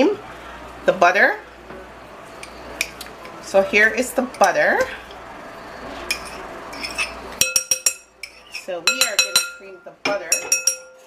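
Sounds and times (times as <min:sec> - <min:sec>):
utensil scraping glass dish: 0:06.1 - 0:07.2
metal clinking against glass: 0:06.8 - 0:11.0.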